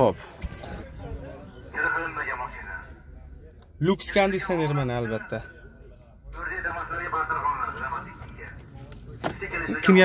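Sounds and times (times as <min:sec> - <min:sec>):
man speaking: 0:03.8 - 0:05.6.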